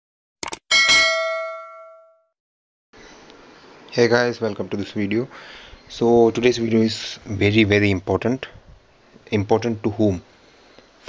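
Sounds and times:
notification bell ding: 0.7s - 2.2s.

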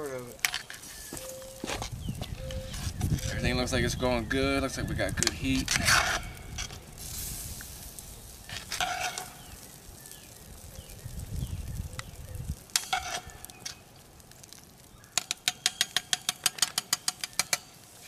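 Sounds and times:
metal spatula scraping pot: 5.3s - 6.8s, 8.4s - 9.6s, 12.8s - 13.8s
metallic taps on pot: 15.2s - 17.7s.

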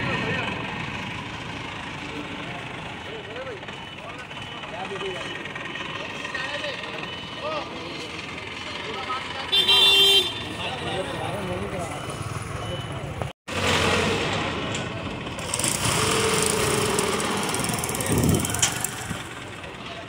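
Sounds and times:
forklift engine running: 0.0s - 9.4s, 10.9s - 20.0s
street traffic: 0.0s - 20.0s
vehicle horn honk: 9.5s - 11.2s.

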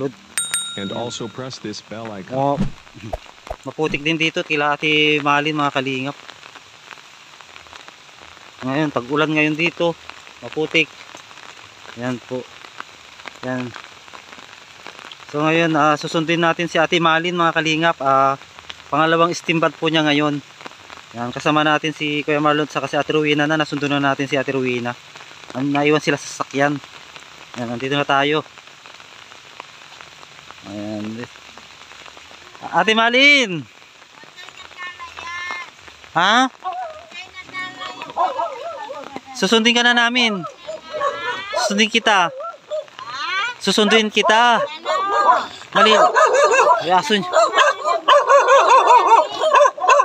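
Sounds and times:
rain falling: 0.0s - 50.0s
faint raindrop ticks: 0.8s - 41.2s, 41.8s - 44.0s.

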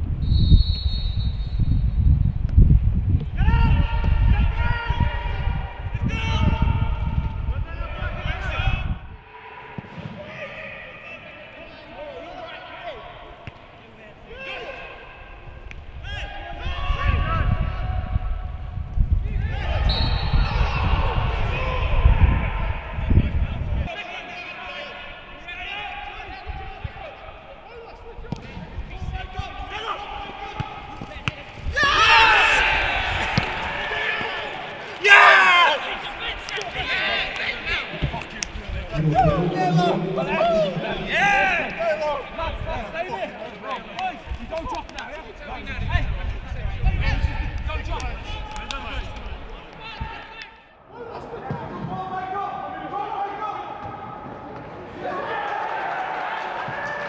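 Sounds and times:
players shouting echoing: 3.4s - 18.6s, 19.2s - 57.0s
men shouting: 29.0s - 38.1s, 38.8s - 43.6s
football being kicked: 33.2s - 34.3s.

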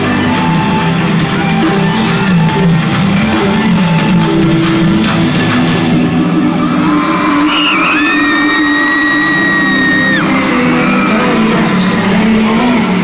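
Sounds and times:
live pop concert music: 0.0s - 13.0s
high held scream: 6.4s - 11.8s.

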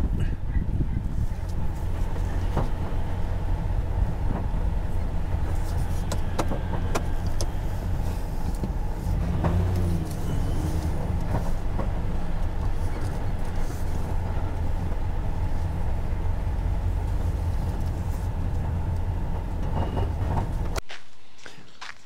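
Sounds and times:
vehicle engine rumble: 0.0s - 22.0s.

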